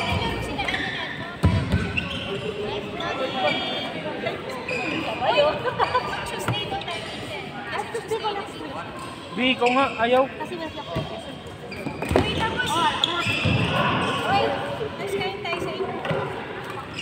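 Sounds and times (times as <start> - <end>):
players' voices in hall: 0.0 - 17.0.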